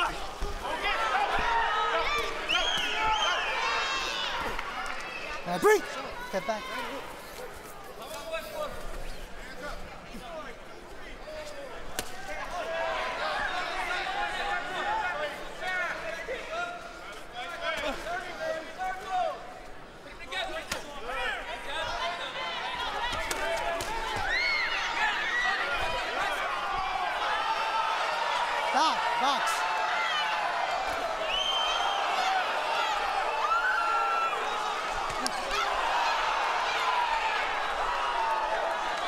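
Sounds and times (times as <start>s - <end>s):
crowd shouting: 0.0s - 7.2s, 21.7s - 39.0s.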